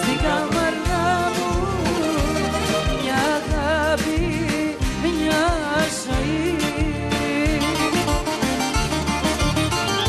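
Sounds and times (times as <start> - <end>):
live band playing instrumental: 0.0 - 10.0.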